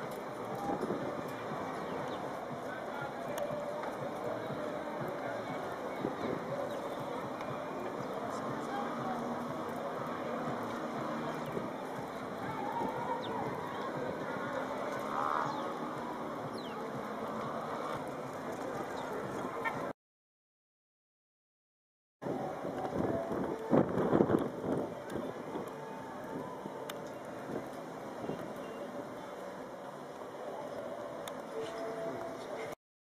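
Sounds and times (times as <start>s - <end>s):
faint indistinct voices: 0.0s - 19.9s, 22.2s - 32.8s
steady rushing noise: 0.0s - 19.9s, 22.2s - 32.8s
outdoor background noise: 0.0s - 20.0s, 22.2s - 32.8s.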